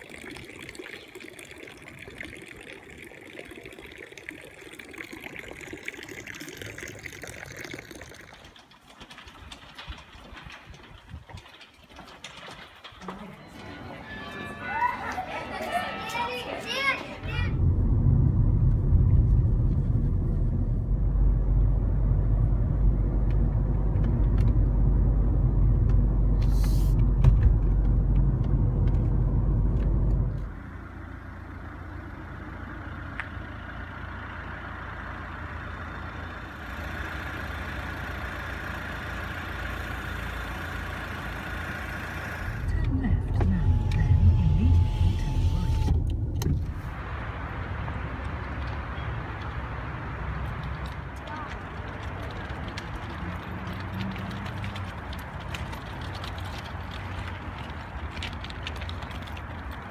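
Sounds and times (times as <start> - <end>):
car driving low rumble: 4.7 - 59.9.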